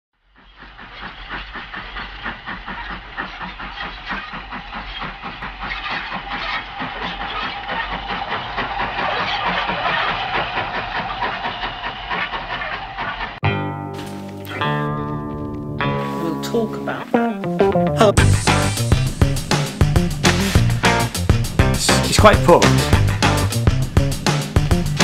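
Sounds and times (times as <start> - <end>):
steam train chuffing: 0.2 - 13.4, 18.2 - 25.0.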